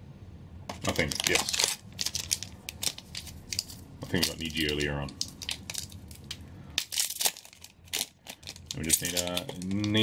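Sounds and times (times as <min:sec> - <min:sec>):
trading cards being handled: 0:00.7 - 0:10.0
foil wrapper crinkling: 0:00.8 - 0:10.0.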